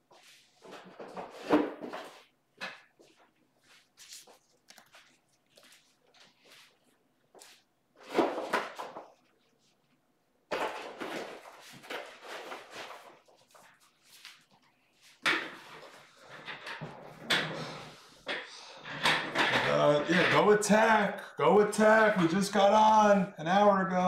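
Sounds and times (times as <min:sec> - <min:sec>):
rustling: 0:03.0 - 0:10.0.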